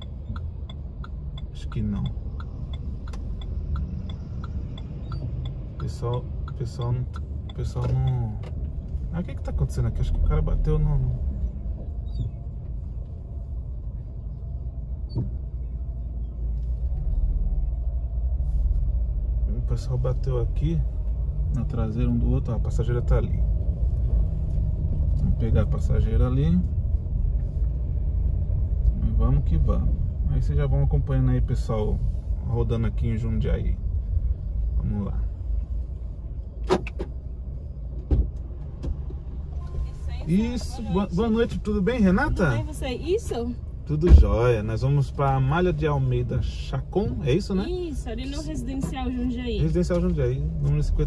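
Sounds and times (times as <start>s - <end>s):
car cabin rumble: 0.0s - 51.0s
car door clicks and thud: 36.6s - 37.2s.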